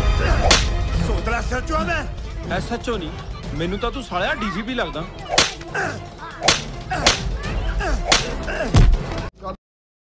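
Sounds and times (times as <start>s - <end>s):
sharp whip-like blows: 0.4s - 0.7s, 5.3s - 5.8s, 6.4s - 7.3s, 8.1s - 8.4s
heavy low thump: 8.7s - 9.1s.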